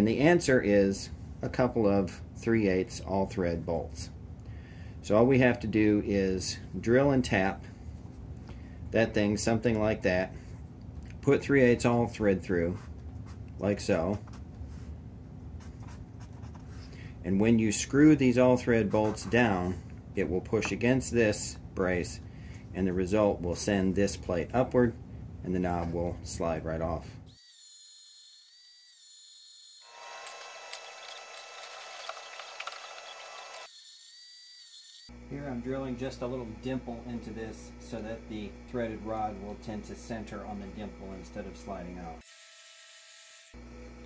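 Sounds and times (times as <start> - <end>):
marker scratching on paper: 15.6 - 16.9
bandsaw cutting steel: 27.4 - 32.0
bandsaw running with whine: 29.6 - 44.0.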